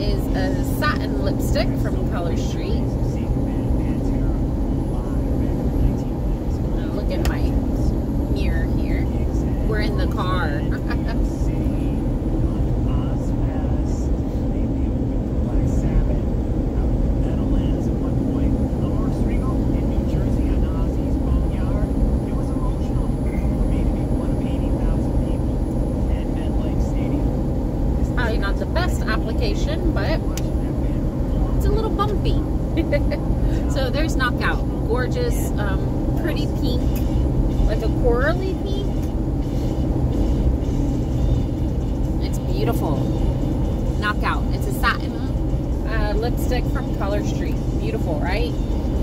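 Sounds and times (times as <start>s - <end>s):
faint voices: 0.0s - 27.4s, 28.0s - 39.0s
car road and engine rumble: 0.0s - 49.0s.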